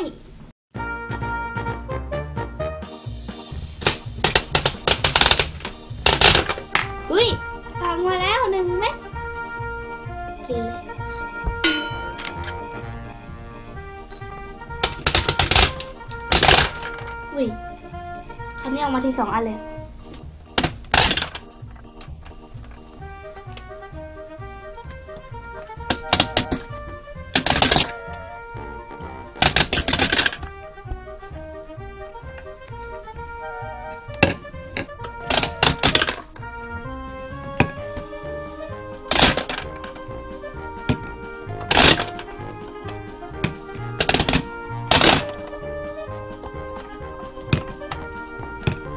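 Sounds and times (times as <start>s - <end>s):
background music: 0.0s - 48.9s.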